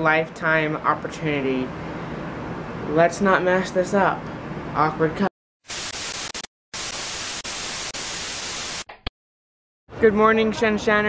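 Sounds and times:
television static hiss: 0:05.7 - 0:08.8.

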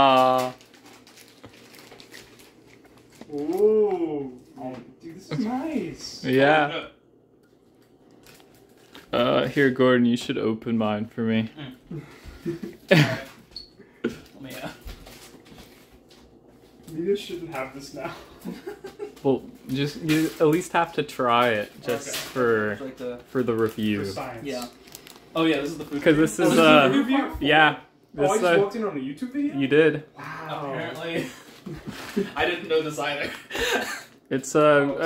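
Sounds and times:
plastic bags crinkling: 0:00.0 - 0:03.6, 0:07.6 - 0:09.5, 0:19.0 - 0:26.2
plastic wrapper rustling: 0:00.0 - 0:03.9, 0:07.5 - 0:09.5, 0:14.4 - 0:17.0, 0:18.9 - 0:26.4.

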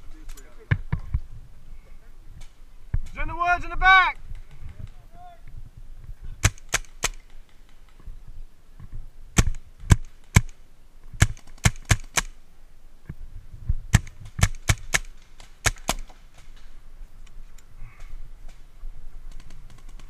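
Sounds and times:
paintball markers firing: 0:06.4 - 0:08.0, 0:11.2 - 0:12.4, 0:13.9 - 0:16.7.

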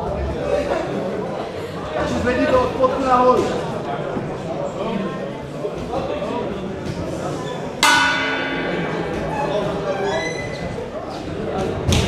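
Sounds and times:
crowd murmur: 0:00.0 - 0:12.0
boxing ring bell: 0:07.8 - 0:10.0.

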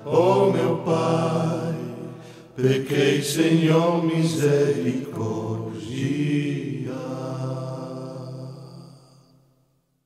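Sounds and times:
voices holding a chant note: 0:00.0 - 0:09.2.

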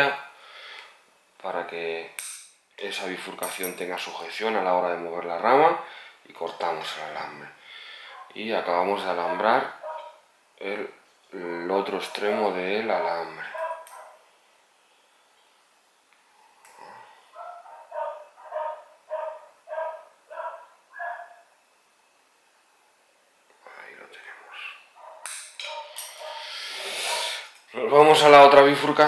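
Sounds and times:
dog barking: 0:09.2 - 0:10.2, 0:13.4 - 0:14.2, 0:17.4 - 0:21.4, 0:25.0 - 0:26.5.

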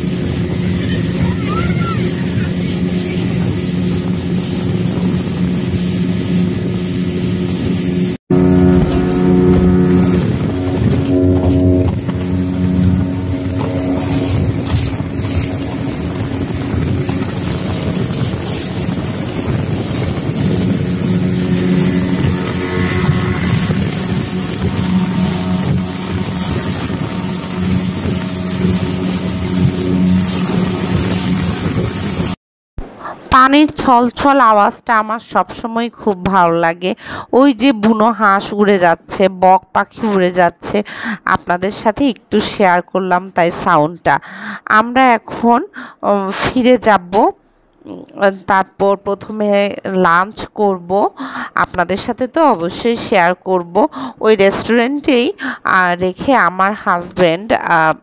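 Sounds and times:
speedboat engine running: 0:00.0 - 0:33.3, 0:46.7 - 0:58.0
wind and water rushing: 0:00.0 - 0:39.2.

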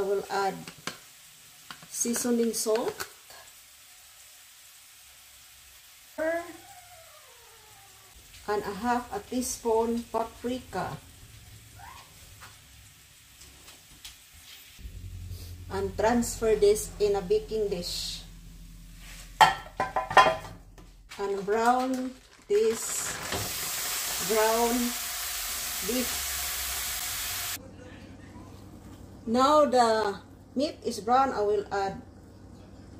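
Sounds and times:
potatoes sizzling in a skillet: 0:00.0 - 0:06.6, 0:08.1 - 0:14.8, 0:21.1 - 0:27.6
metal clinking on glass dish: 0:19.4 - 0:20.5.

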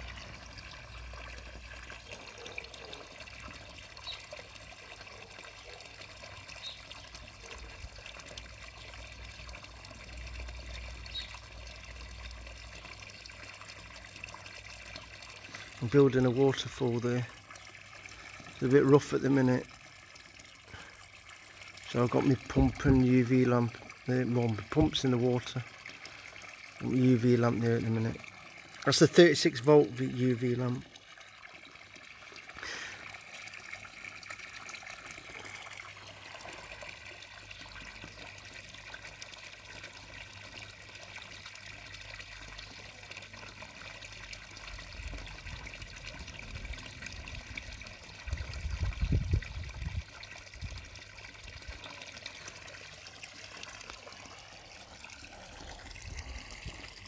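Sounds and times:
water trickling into pond: 0:00.0 - 0:57.0.

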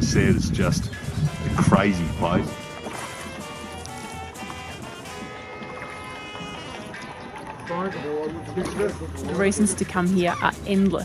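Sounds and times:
background music with held notes: 0:00.0 - 0:11.0
paddle stroking through water: 0:01.0 - 0:10.8.

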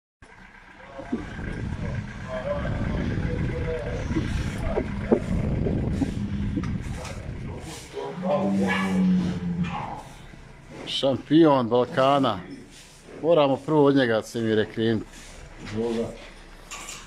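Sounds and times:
low unsteady rumbling: 0:00.2 - 0:16.7.

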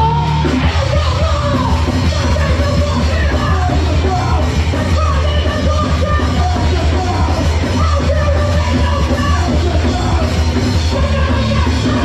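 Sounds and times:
hardcore punk band playing: 0:00.0 - 0:12.0.

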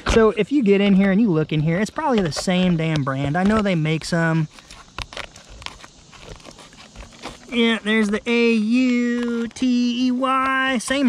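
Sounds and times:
fingers picking at brittle plastic: 0:02.0 - 0:11.0.

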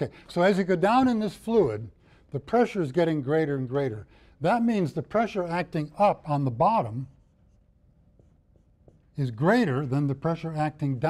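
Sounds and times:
marker drawing on whiteboard: 0:04.5 - 0:11.0.

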